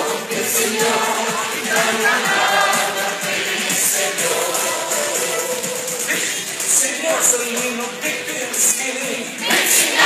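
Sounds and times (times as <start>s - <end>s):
crowd singing with music: 0.0s - 10.0s.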